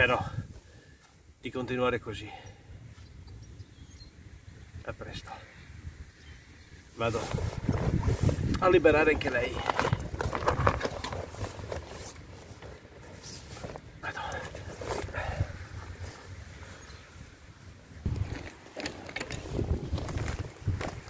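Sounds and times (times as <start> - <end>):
wind on microphone: 5.7 - 11.6, 18.0 - 18.5, 19.2 - 21.0
footsteps through long grass: 7.0 - 21.0.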